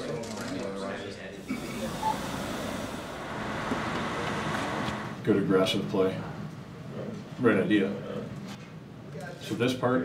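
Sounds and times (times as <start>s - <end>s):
bus engine and road rumble: 1.4s - 5.2s.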